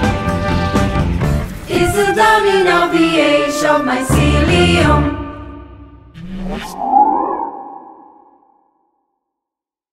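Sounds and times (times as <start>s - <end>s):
ringing electronic tone: 6.2s - 8.7s.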